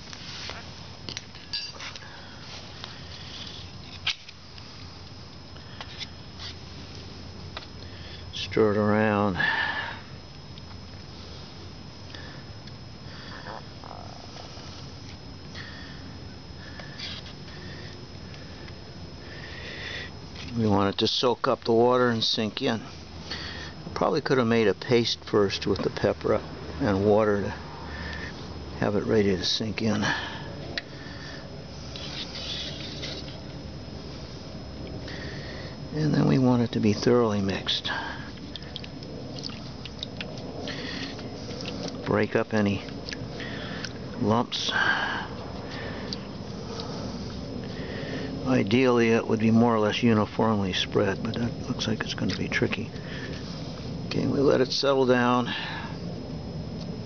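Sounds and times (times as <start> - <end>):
low background noise: 0.0 - 57.0.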